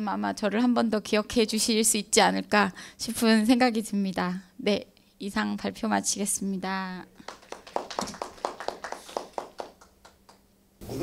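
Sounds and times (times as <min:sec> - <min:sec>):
small audience applause: 0:07.2 - 0:10.5.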